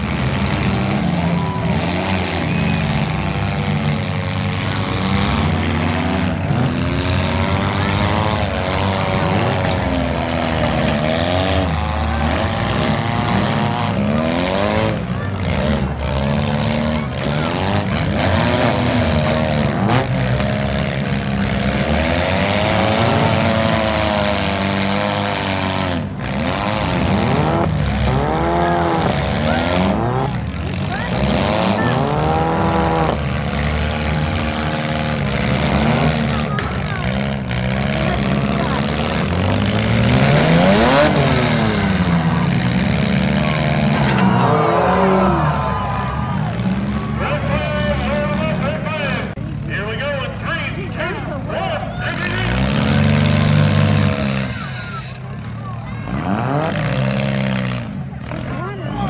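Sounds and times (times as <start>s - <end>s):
car engines revving: 0.0s - 59.0s
cars crashing into each other: 33.2s - 47.0s.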